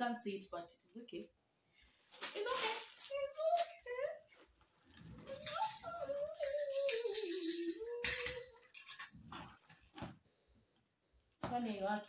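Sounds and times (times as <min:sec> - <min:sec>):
small items rattling: 0:02.1 - 0:04.1, 0:05.0 - 0:10.0.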